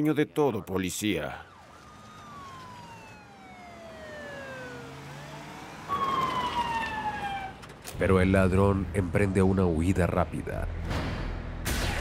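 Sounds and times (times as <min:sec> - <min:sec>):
police siren wailing: 0:00.9 - 0:07.8.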